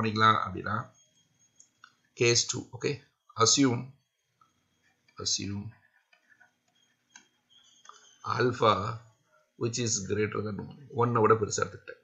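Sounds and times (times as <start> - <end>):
stylus ticking on tablet screen: 0.8 - 2.2, 4.1 - 8.3.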